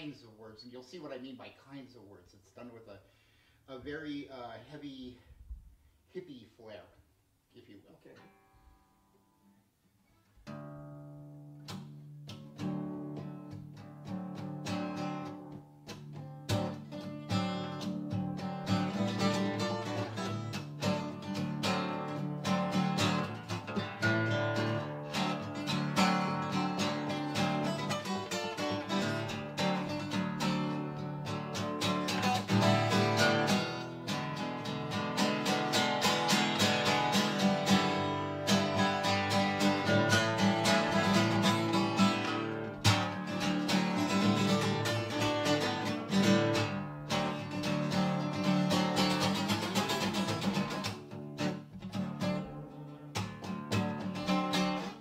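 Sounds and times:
acoustic guitar strumming: 10.2s - 55.0s.

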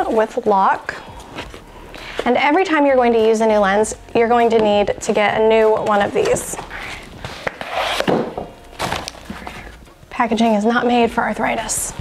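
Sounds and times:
cardboard scraping and rustling: 6.2s - 9.8s.

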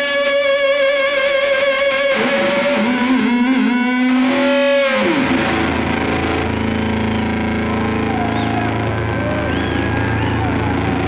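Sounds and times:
audience cheering: 6.4s - 11.0s
high whistles: 6.6s - 10.8s.

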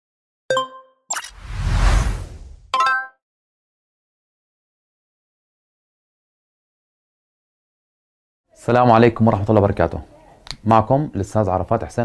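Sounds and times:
whoosh with deep rumble: 1.4s - 2.7s.

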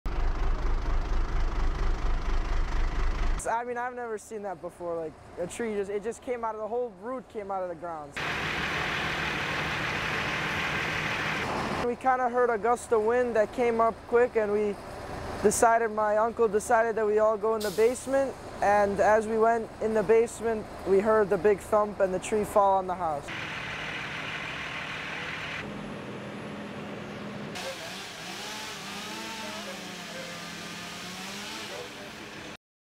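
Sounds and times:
truck engine idling: 0.1s - 3.4s, 8.2s - 11.8s, 23.3s - 31.8s
hiss: 17.6s - 18.1s.

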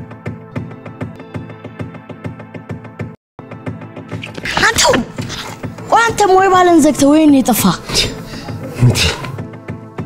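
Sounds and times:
breathy vocal outburst: 7.8s - 9.4s.

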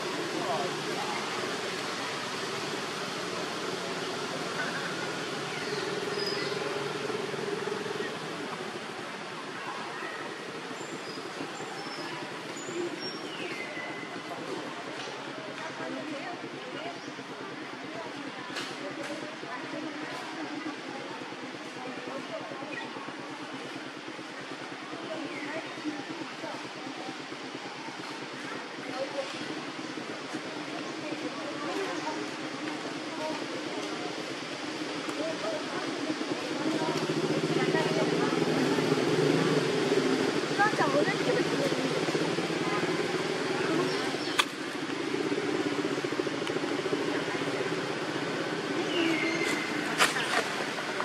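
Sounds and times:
engine humming: 0.0s - 17.8s, 23.0s - 51.0s
distant chatter: 0.0s - 51.0s
outdoor background noise: 0.0s - 51.0s.

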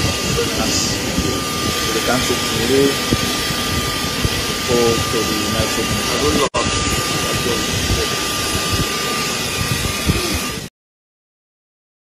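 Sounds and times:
high-pitched whine: 0.0s - 10.7s
jet engine rushing hiss: 0.0s - 10.7s
wind buffeting microphone: 0.0s - 10.7s.

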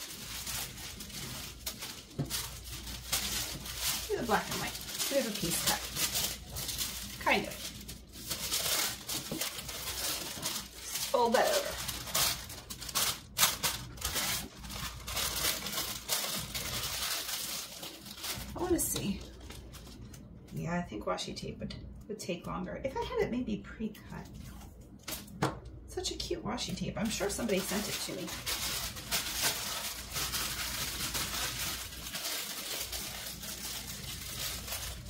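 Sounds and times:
tissue paper crinkling: 0.0s - 20.6s, 27.0s - 35.0s.

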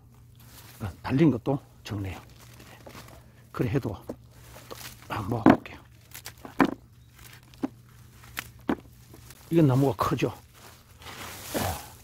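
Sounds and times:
roots rustling: 0.0s - 12.0s
peanut pods knocking in basin: 6.4s - 6.8s.

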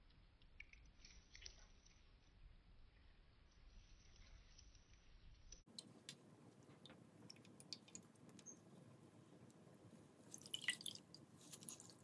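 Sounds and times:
water dripping: 5.6s - 8.7s, 10.2s - 12.0s
wet foam squishing underwater: 10.3s - 12.0s.

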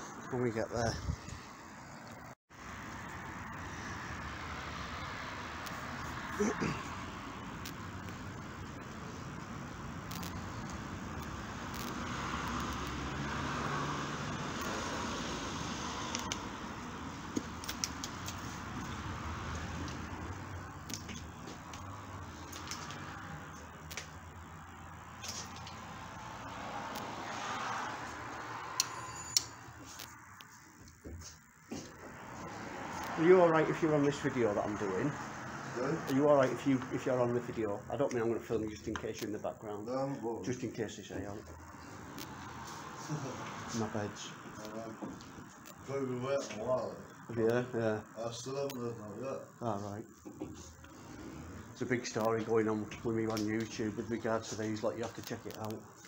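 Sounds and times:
steady background noise: 0.0s - 56.0s.

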